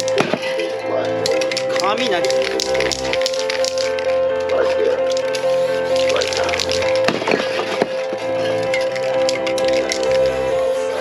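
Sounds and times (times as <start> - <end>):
background music with held tone: 0.0 - 11.0
spray cans clattering: 1.2 - 11.0.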